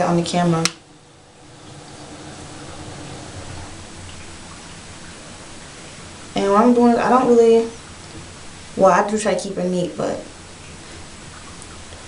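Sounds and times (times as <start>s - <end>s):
low room noise hiss: 0.0s - 12.0s.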